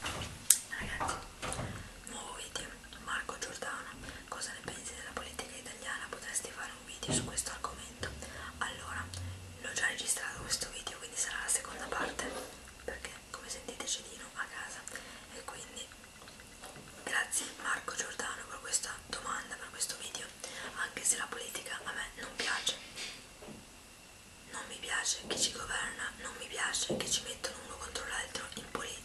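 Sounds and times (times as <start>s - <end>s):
woman whispering: 0.7s - 1.2s, 2.0s - 16.0s, 17.0s - 22.8s, 24.5s - 29.0s.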